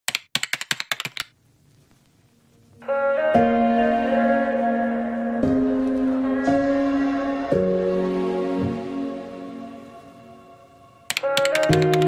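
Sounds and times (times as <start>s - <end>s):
keyboard key clicks: 0.1s - 1.3s, 11.1s - 12.0s.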